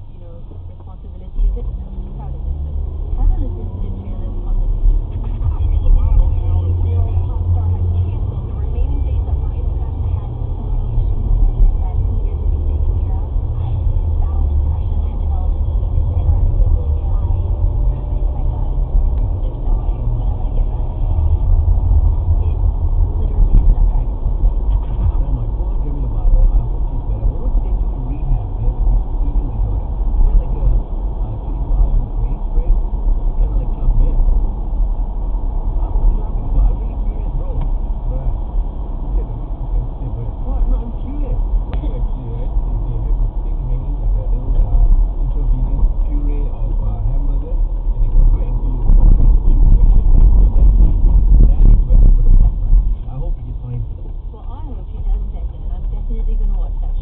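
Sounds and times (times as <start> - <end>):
engine and tyres rumbling: 0.0 - 57.0
muffled voices from car radio: 0.0 - 57.0.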